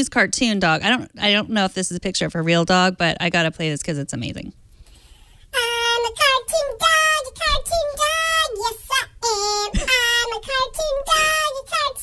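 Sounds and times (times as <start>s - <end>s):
child-like voice singing: 5.5s - 12.0s.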